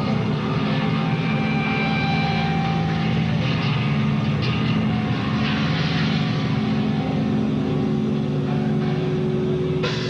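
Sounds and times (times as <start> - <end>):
rock band droning chord: 0.0 - 10.0.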